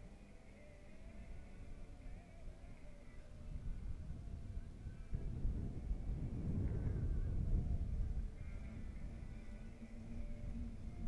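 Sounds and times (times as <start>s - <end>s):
wind rumbling on microphone: 0.8s - 11.0s.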